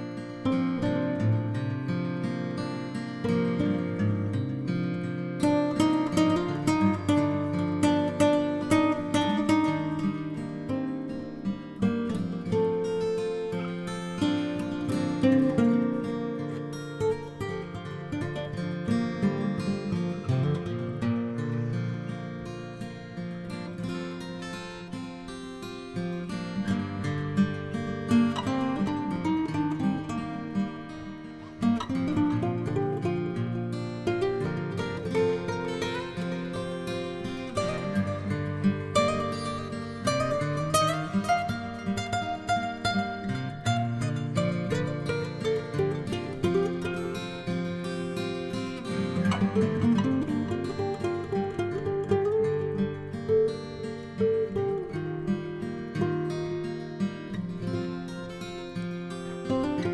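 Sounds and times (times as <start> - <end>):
acoustic guitar plucked and strummed: 0.0 - 59.9.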